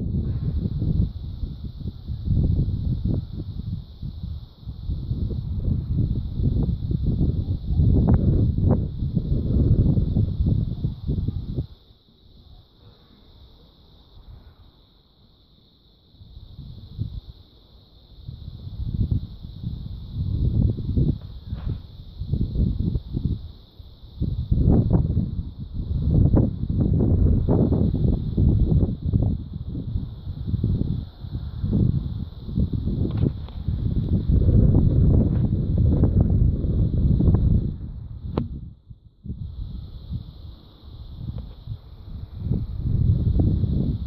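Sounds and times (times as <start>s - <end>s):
wind buffeting microphone: 0.0s - 11.8s, 16.2s - 17.4s, 18.2s - 44.0s
steady high hiss: 0.0s - 44.0s.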